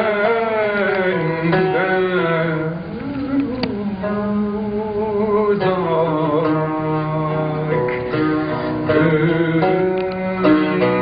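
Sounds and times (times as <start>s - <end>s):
man singing: 0.0s - 11.0s
oud playing: 0.0s - 11.0s.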